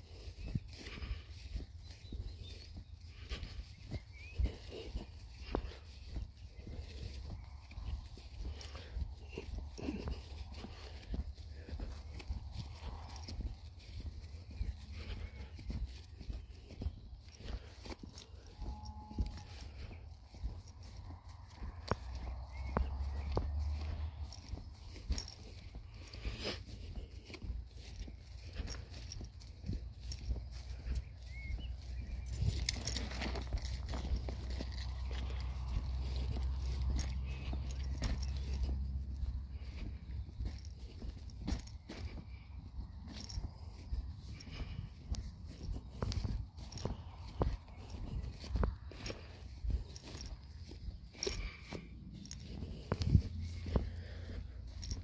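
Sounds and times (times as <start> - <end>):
footsteps on grass: 0.0 - 55.0
wind rumbling on microphone: 0.0 - 55.0.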